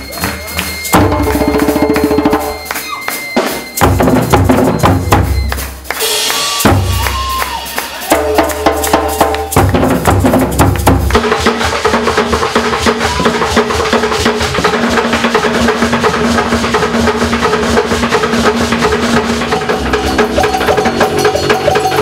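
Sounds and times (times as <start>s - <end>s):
ensemble music with busy percussion: 0.0s - 22.0s.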